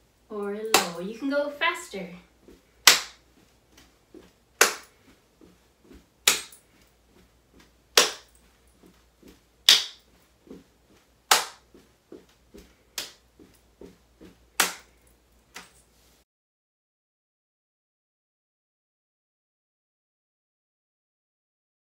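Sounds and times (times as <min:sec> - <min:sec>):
hand claps: 0:00.7 - 0:01.0, 0:02.8 - 0:03.2, 0:04.6 - 0:05.0, 0:06.2 - 0:06.6, 0:08.0 - 0:08.4, 0:09.7 - 0:10.0, 0:11.3 - 0:11.7, 0:13.0 - 0:13.2, 0:14.6 - 0:15.0
footsteps on carpet: 0:01.6 - 0:16.2.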